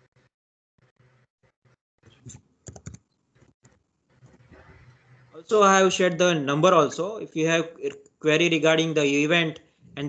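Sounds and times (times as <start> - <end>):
keyboard key clicks: 2.3 - 3.0.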